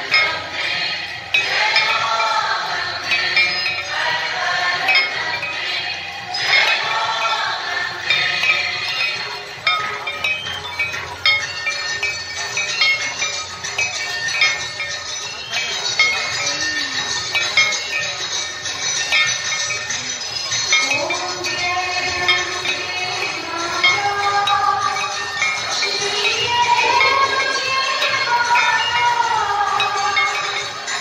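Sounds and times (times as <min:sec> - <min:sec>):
devotional singing: 0:00.0 - 0:10.4, 0:20.7 - 0:31.0
clinking cymbals: 0:00.0 - 0:31.0
large crowd noise: 0:00.0 - 0:31.0
metal bells ringing: 0:00.0 - 0:31.0.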